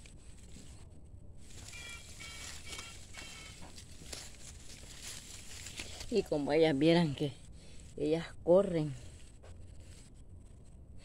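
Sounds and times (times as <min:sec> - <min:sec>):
light rustling: 0:00.0 - 0:08.0
low steady hum: 0:00.0 - 0:11.0.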